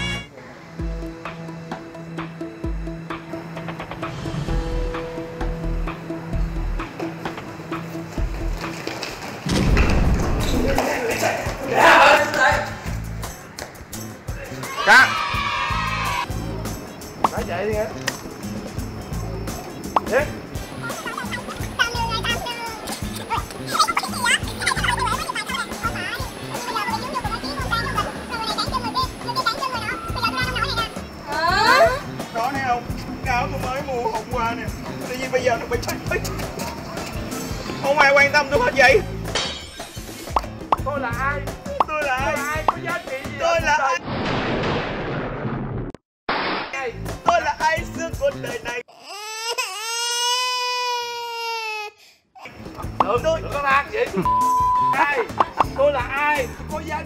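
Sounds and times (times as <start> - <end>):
music: 0.0 - 44.0, 46.8 - 48.8, 52.4 - 57.0
background music with bass beat: 0.8 - 8.6, 38.6 - 43.4, 52.6 - 57.0
high crying wail: 14.6 - 16.3
women laughing and talking: 20.7 - 32.2.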